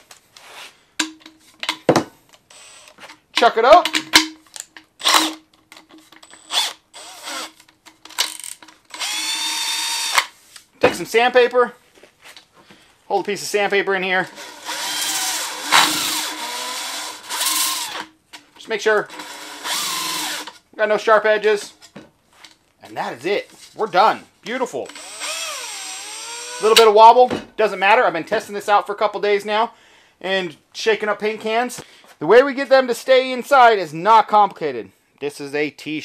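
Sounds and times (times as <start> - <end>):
drill motor whine: 2.5 - 3.0, 8.9 - 10.2, 14.4 - 18.0, 19.1 - 20.5, 24.8 - 26.7.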